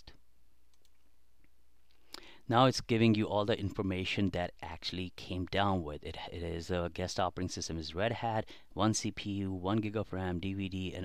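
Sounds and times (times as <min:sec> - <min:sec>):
computer mouse click: 0:00.7 - 0:01.0.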